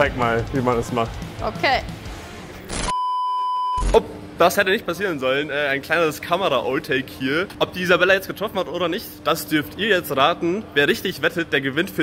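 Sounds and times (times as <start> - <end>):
pure beep tone: 2.8 - 4.0.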